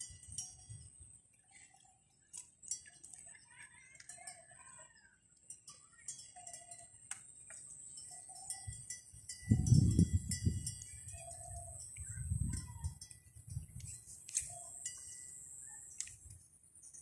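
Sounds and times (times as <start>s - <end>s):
low rumble on microphone: 9.4s - 10.8s.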